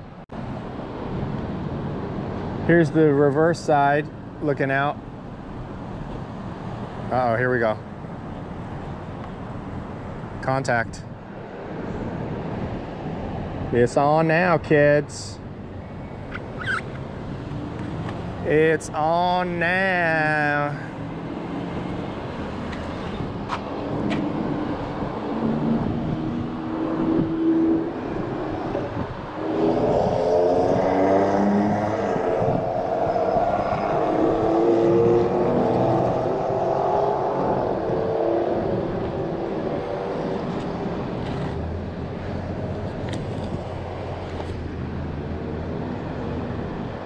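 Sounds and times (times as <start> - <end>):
road traffic rushing: 0.0 - 47.0.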